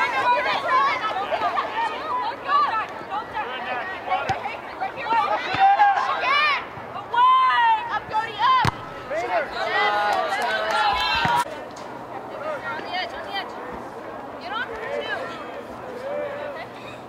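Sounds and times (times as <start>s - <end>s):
ball kicked thud: 8.6s - 8.9s.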